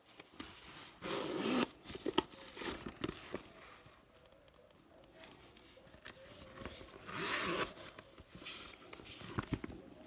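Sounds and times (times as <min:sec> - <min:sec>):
metal zipper rasping: 0:01.0 - 0:01.7.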